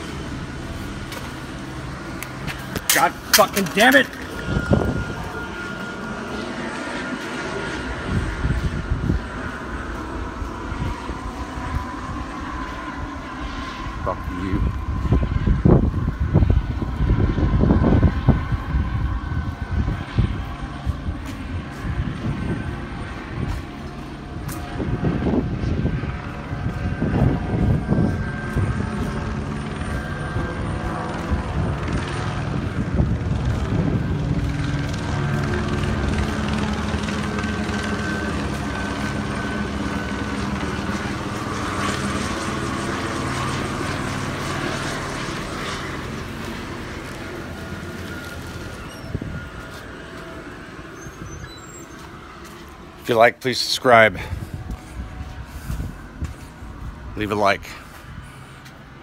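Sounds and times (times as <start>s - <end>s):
gusty rumbles: 0.0s - 53.0s, 54.1s - 57.2s
helicopter rotor and engine droning: 0.0s - 59.0s.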